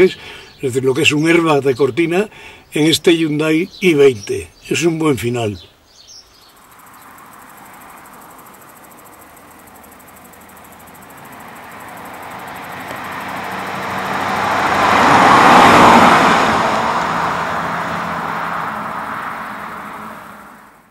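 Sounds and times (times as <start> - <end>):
car driving past: 6.4 - 20.9.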